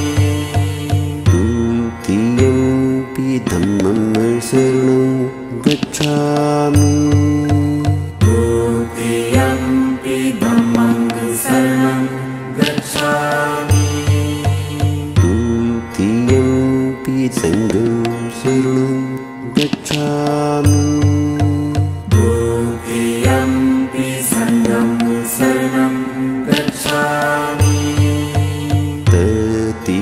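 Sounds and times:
low pulsing beat: 0:00.0 - 0:04.7, 0:12.6 - 0:18.7, 0:19.5 - 0:25.8, 0:26.4 - 0:29.7
chanted mantra with held sung notes: 0:00.0 - 0:30.0
steady low drone: 0:00.0 - 0:30.0.

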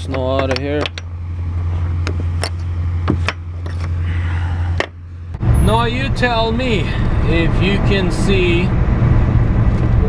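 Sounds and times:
steady low drone: 0:01.0 - 0:10.0.

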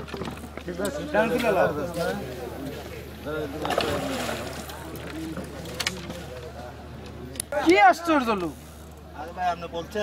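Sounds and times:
fish thrashing and splashing: 0:03.5 - 0:06.1
sharp splash: 0:03.6 - 0:04.8.

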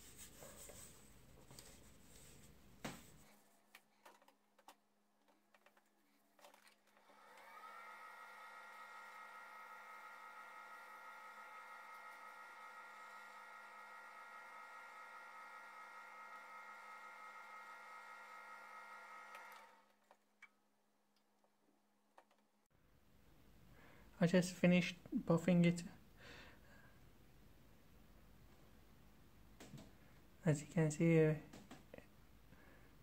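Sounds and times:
wood lathe motor whine: 0:07.0 - 0:19.9.

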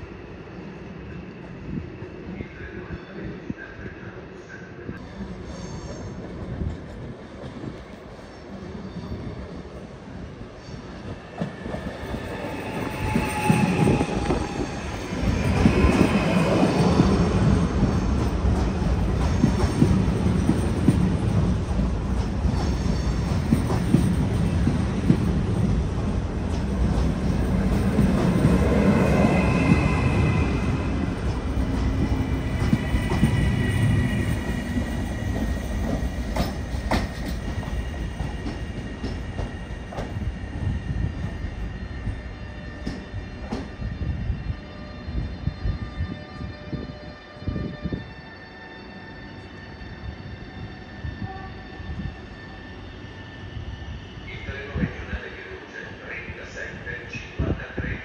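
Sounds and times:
train wheels rumbling over rails: 0:11.0 - 0:44.2
high wheel squeals: 0:11.8 - 0:16.6.

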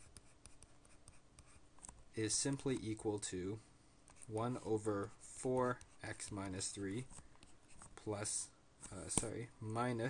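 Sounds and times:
stylus tapping and scratching tablet: 0:00.0 - 0:03.2, 0:04.1 - 0:08.2, 0:08.8 - 0:09.4.

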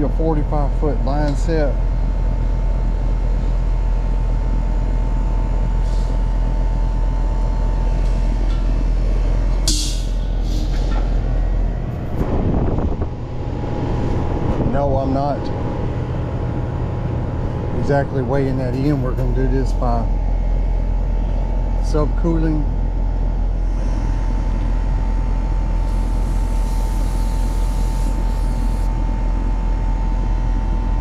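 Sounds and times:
air conditioner unit humming: 0:00.0 - 0:31.0.

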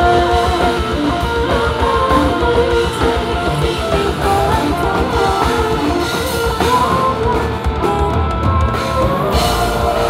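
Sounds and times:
drum kit: 0:00.0 - 0:10.0
guitar: 0:00.0 - 0:10.0
live rock band playing: 0:00.0 - 0:10.0.

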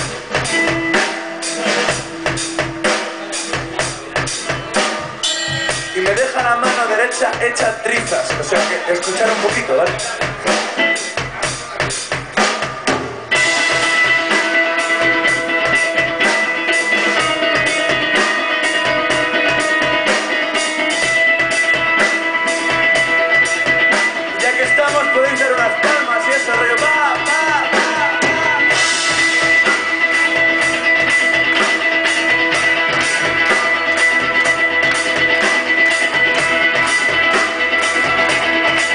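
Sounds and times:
drum kit: 0:00.0 - 0:38.9
electric guitars: 0:00.0 - 0:38.9
rock band playing: 0:00.0 - 0:38.9.

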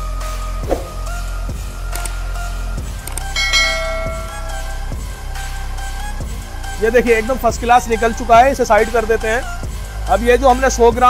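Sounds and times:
music with deep bass beat: 0:00.0 - 0:11.0
bell chime: 0:03.3 - 0:05.2.

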